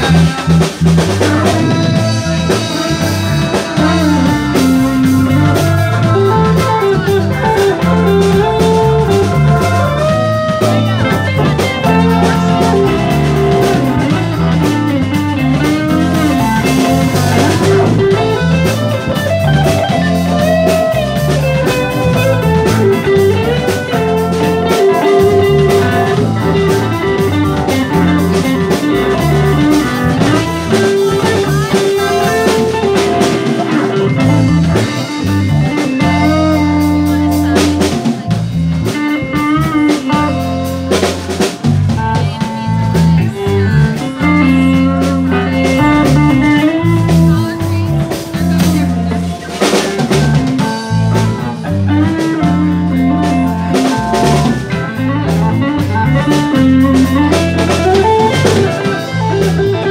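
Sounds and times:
drum kit: 0:00.0 - 0:59.9
electric bass: 0:00.0 - 0:59.9
electric guitar: 0:00.0 - 0:59.9
keyboards: 0:00.0 - 0:59.9.

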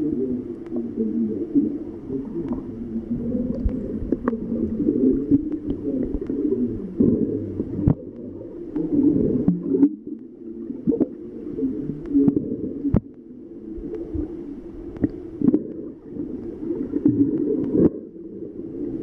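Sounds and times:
churning underwater rumble: 0:00.0 - 0:19.0
sharp underwater clicks: 0:02.2 - 0:02.7, 0:03.4 - 0:07.2, 0:07.8 - 0:11.2, 0:14.9 - 0:18.0.

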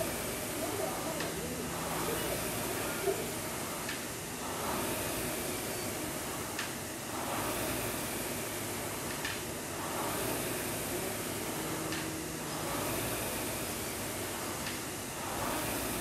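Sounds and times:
rowing machine fan whooshing: 0:00.0 - 0:16.0.

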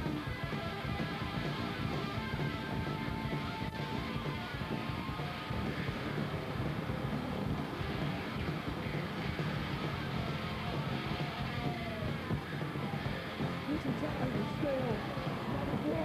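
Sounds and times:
bass guitar: 0:00.0 - 0:16.0
distorted electric guitar: 0:00.0 - 0:16.0
drums: 0:00.0 - 0:16.0
heavy metal band playing: 0:00.0 - 0:16.0.

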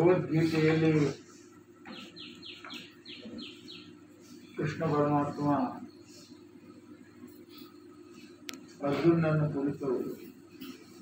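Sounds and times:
small bird chirping: 0:01.8 - 0:04.6.

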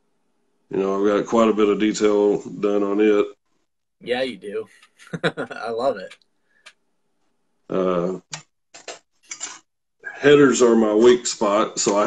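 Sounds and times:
man saying uh: 0:00.7 - 0:03.3, 0:04.1 - 0:06.1, 0:07.7 - 0:08.2, 0:10.1 - 0:12.0.

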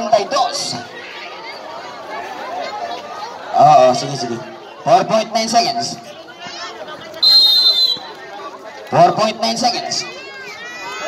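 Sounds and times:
faint crowd chatter: 0:00.0 - 0:11.0
referee's whistle blast: 0:07.2 - 0:08.1.

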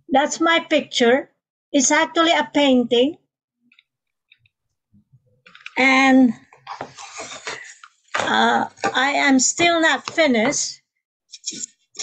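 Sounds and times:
woman speaking: 0:00.1 - 0:03.3, 0:05.7 - 0:06.5, 0:07.5 - 0:10.9.

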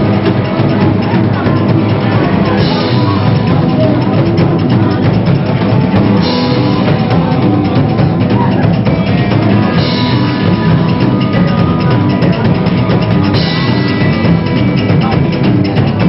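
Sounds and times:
live rock band playing loudly: 0:00.0 - 0:16.0.

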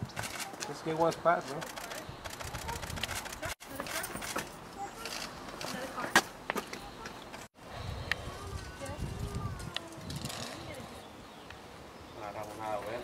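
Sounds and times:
sharp clicks: 0:01.5 - 0:03.6
faint indistinct voices: 0:01.6 - 0:11.3.

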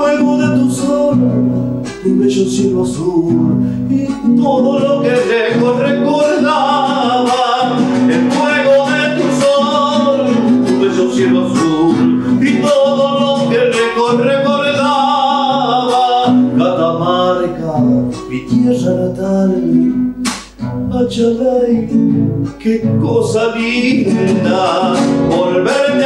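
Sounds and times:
man singing folk song: 0:00.0 - 0:26.0
strummed classical guitar: 0:00.0 - 0:26.0.

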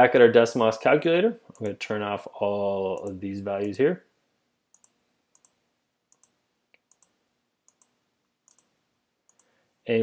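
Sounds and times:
faint computer mouse clicks: 0:04.7 - 0:08.7, 0:09.3 - 0:09.5.

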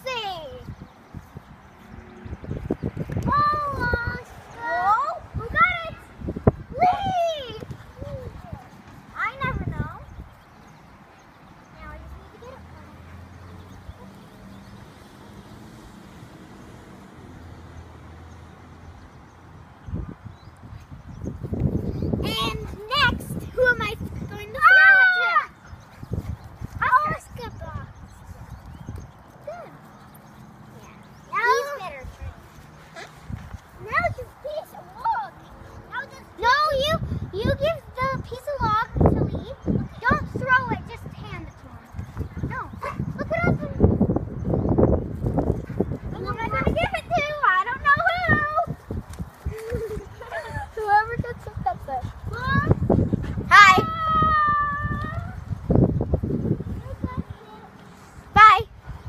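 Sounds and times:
wind buffeting microphone: 0:00.0 - 0:59.0
dog paws pattering on grass: 0:22.6 - 0:35.4, 0:45.2 - 0:53.0.

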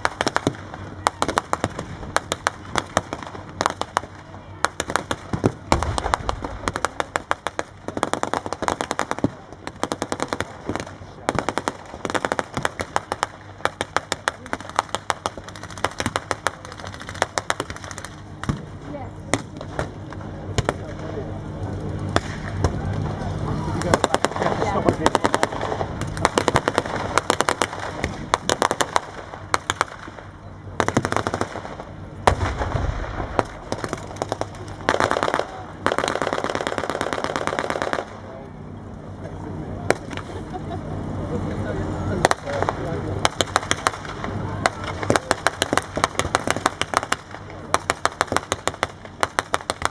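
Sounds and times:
tank engine running: 0:00.0 - 0:49.9
rifle shots: 0:23.9 - 0:38.2
machine-gun bursts: 0:33.7 - 0:38.2.

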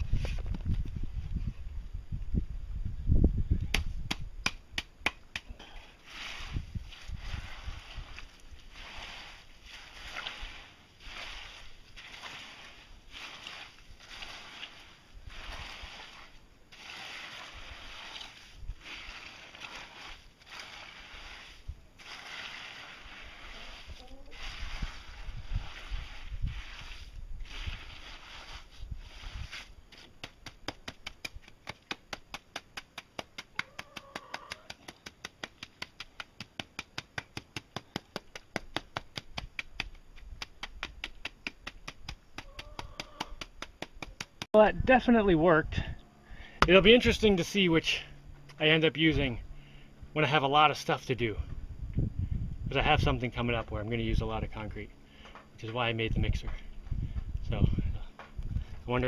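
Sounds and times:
trowel scraping wet concrete: 0:05.9 - 0:44.5
trowel tapping concrete: 0:30.0 - 0:44.5.

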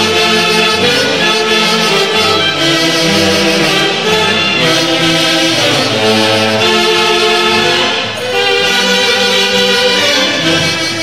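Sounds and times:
saxophones holding sustained notes: 0:00.0 - 0:11.0.

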